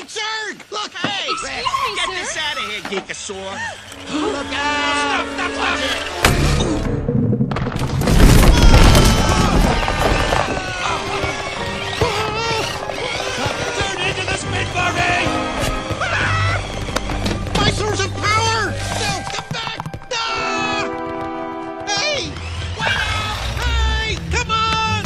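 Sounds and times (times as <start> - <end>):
voices calling out: 0.0 - 6.2, 8.3 - 21.1, 21.8 - 25.0
film score: 0.0 - 25.0
cartoon crash: 6.2 - 11.0
balls bouncing: 7.4 - 22.8.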